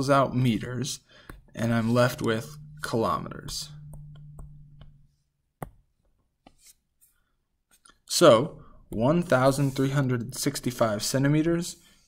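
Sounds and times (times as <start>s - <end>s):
stylus tapping on tablet: 1.2s - 6.6s.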